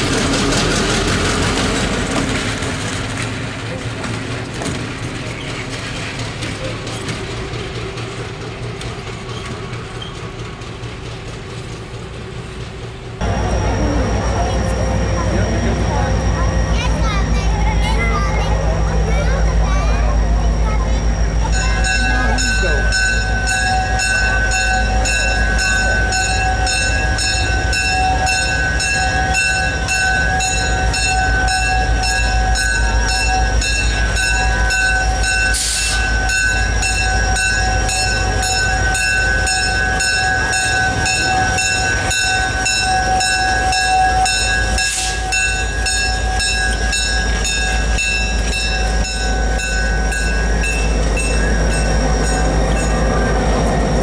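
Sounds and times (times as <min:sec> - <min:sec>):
low diesel engine rumble: 0:00.0 - 0:54.0
locomotive bell ringing: 0:13.2 - 0:54.0.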